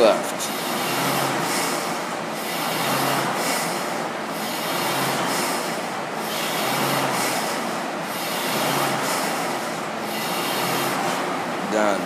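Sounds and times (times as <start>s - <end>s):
rowing machine fan whirring: 0.0s - 12.0s.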